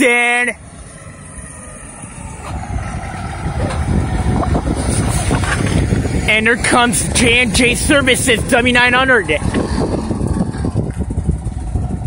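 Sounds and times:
truck engine rumble passing: 0.0s - 12.0s.

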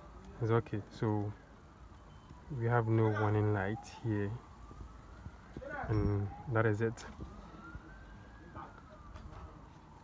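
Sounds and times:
faint siren wail: 0.0s - 10.0s.

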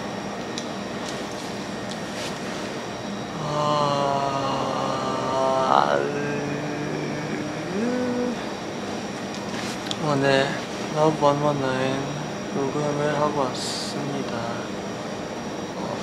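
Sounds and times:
room noise hiss: 0.0s - 16.0s
man's drawn-out hesitation sound: 10.0s - 14.7s.

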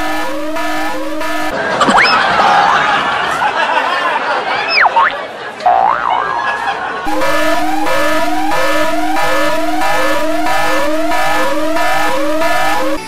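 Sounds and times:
electronic siren tone sweeping upward: 0.0s - 2.1s, 5.7s - 6.4s, 7.1s - 13.0s
low pulsing tone: 7.1s - 13.0s.

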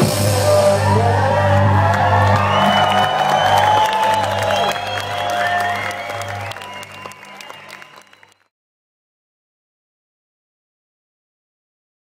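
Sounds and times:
crowd cheering and clapping: 0.3s - 8.5s.

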